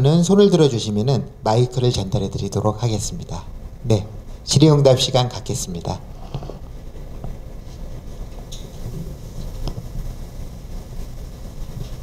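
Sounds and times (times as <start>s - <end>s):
rumble of movement and shuffling: 1.0s - 12.0s.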